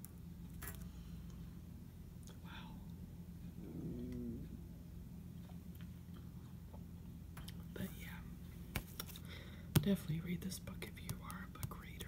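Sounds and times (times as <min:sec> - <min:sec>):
steady low hum: 0:00.0 - 0:12.0
woman whispering: 0:07.7 - 0:08.3, 0:10.0 - 0:12.0
fingers tapping book cover: 0:11.0 - 0:11.9.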